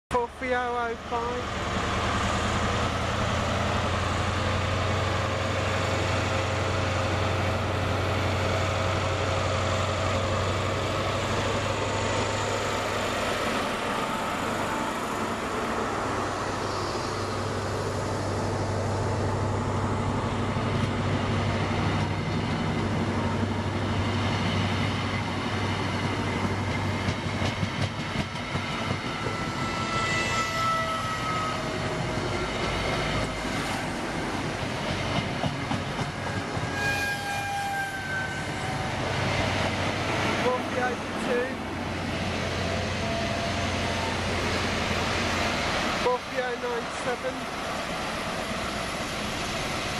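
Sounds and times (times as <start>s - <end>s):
diesel locomotive engine drone: 0.1s - 49.9s
train coaches rumbling past: 0.1s - 49.9s
high wheel squeals: 29.2s - 31.9s, 36.6s - 38.9s.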